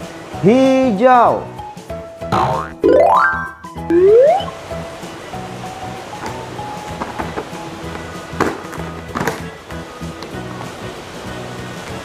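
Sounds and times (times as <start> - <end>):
background music: 0.0 - 12.0
rising cartoon boing effects: 2.3 - 4.6.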